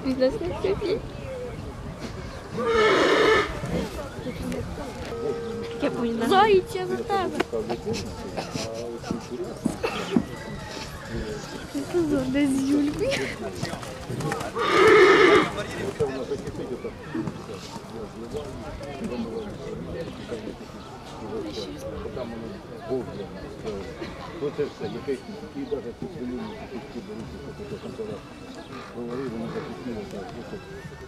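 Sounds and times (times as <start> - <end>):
horse whinnying: 2.6 - 3.6, 14.5 - 15.6.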